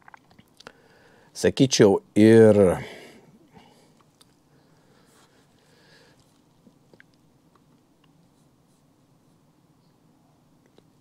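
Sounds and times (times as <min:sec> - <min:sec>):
faint clicks and rustles: 0:03.8 - 0:10.0.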